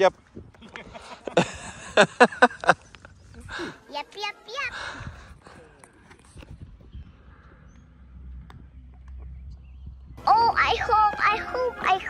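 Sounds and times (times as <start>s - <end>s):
low rumble: 6.5s - 10.9s
cartoon character voice: 10.2s - 12.0s.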